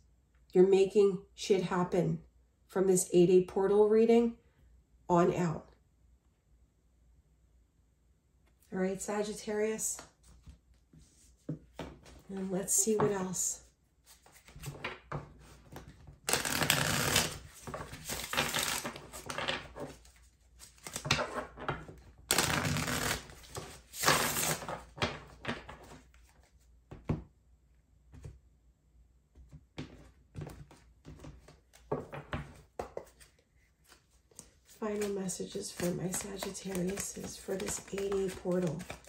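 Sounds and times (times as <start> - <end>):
cards being shuffled: 14.0 - 26.7, 29.8 - 39.0.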